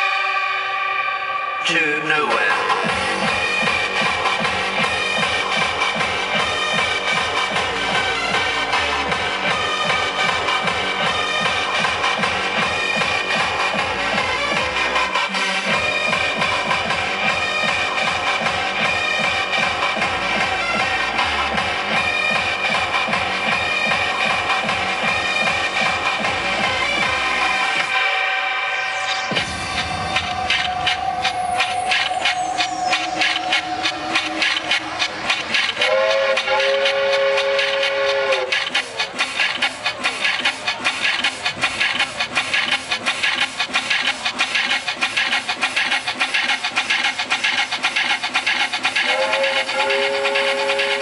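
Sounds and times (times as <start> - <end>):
hard dance electronic music: 1.6 - 45.4.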